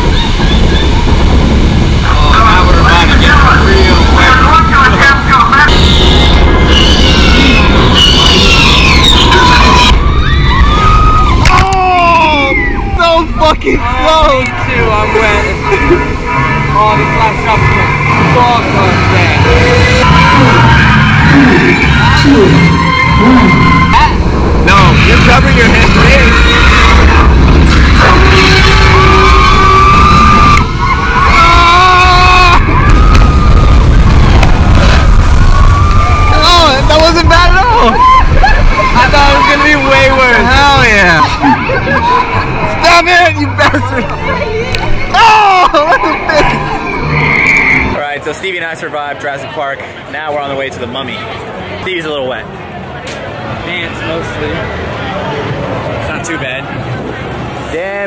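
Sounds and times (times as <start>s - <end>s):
low rumble from lift: 0.0s - 47.2s
shrill swooping cries: 2.8s - 11.5s, 15.1s - 34.2s.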